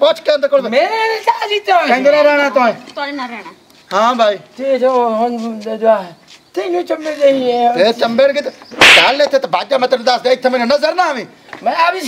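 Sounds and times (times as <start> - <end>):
man speaking heatedly: 4.0 - 12.0
sharp slap or stick strike: 8.8 - 9.3.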